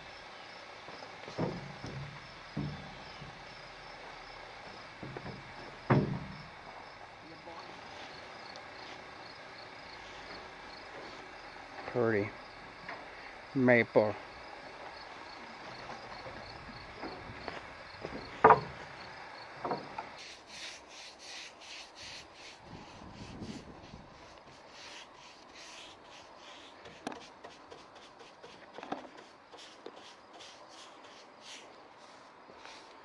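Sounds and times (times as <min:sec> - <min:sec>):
insects chirping: 0:00.0 - 0:33.0
paintbrush swishing on wood: 0:20.2 - 0:32.9.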